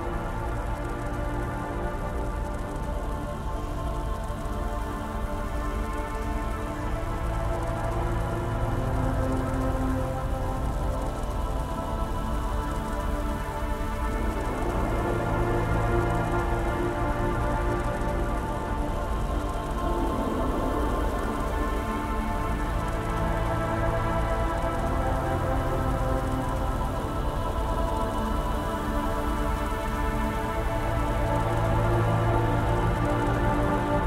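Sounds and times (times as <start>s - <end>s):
slow synth drone: 0.0s - 34.0s
rain-like industrial noise: 12.1s - 28.2s.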